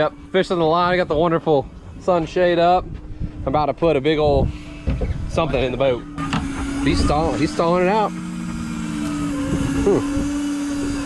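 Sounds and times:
fishing reel motor whining: 0:00.0 - 0:02.0, 0:04.2 - 0:11.0.

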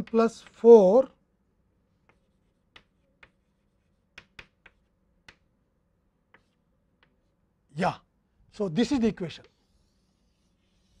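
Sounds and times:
chalk tapping on blackboard: 0:00.0 - 0:00.6, 0:02.0 - 0:05.5, 0:06.2 - 0:07.3.

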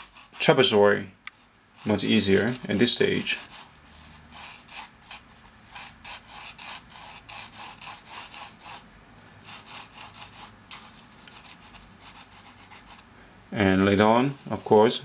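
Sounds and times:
pencil strokes on paper: 0:00.0 - 0:00.7, 0:01.3 - 0:08.8, 0:09.4 - 0:13.0, 0:14.0 - 0:15.0.

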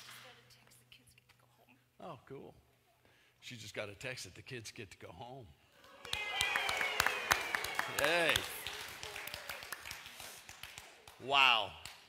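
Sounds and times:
hand clapping in a hall: 0:00.0 - 0:00.4, 0:05.8 - 0:12.0.

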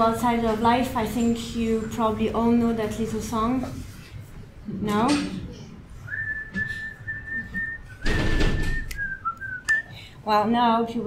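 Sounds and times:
person whistling: 0:06.1 - 0:09.9.

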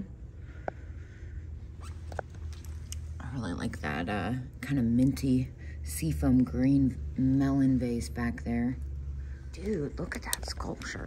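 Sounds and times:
low steady room hum: 0:00.0 - 0:11.0.

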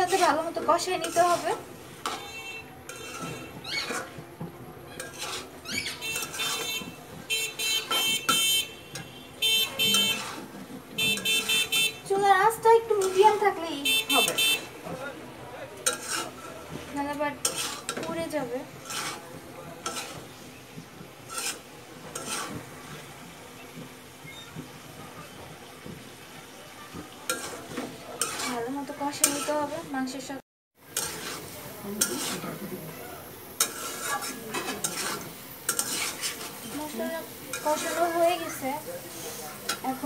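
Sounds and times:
spatula scraping metal pan: 0:00.0 - 0:04.2, 0:04.9 - 0:14.7, 0:15.8 - 0:20.6, 0:21.2 - 0:23.3, 0:27.3 - 0:29.9, 0:30.8 - 0:32.8, 0:33.5 - 0:40.0
frying sizzle: 0:00.0 - 0:40.0.

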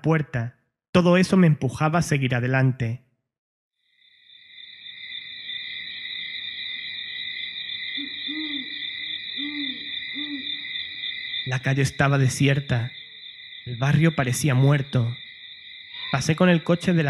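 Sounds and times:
owl hooting: 0:07.7 - 0:11.6, 0:15.8 - 0:16.4.

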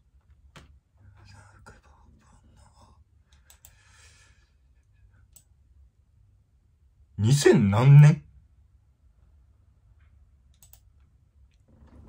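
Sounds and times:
man whispering faintly: 0:01.0 - 0:03.1.

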